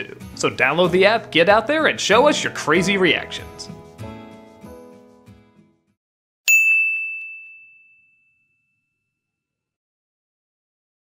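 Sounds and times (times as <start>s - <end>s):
bell-like ding: 6.5s - 9.1s.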